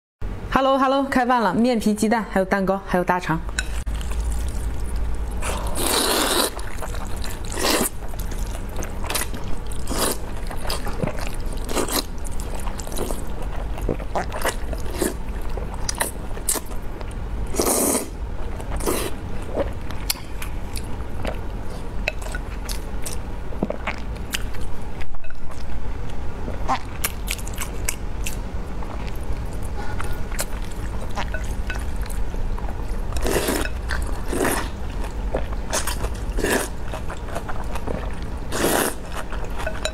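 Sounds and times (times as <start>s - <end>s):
chewing: 3.6s - 17.2s, 26.7s - 39.9s
slurping noodles: 5.4s - 8.6s, 17.5s - 18.2s, 38.5s - 39.0s.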